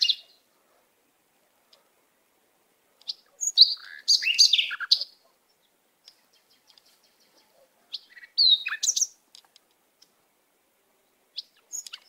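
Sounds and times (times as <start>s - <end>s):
songbird chirps and whistles: 0.0s - 0.4s, 3.0s - 9.2s, 11.3s - 12.0s.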